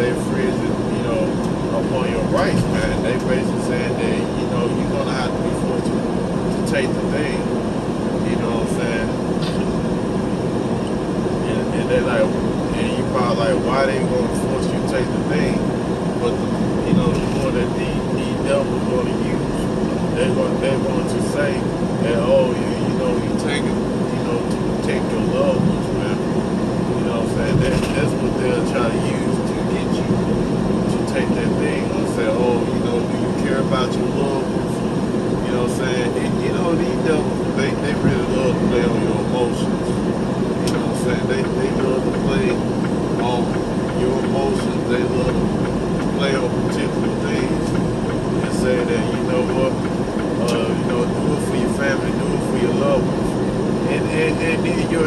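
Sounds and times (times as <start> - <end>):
engine and tyre noise: 0.0 - 55.0.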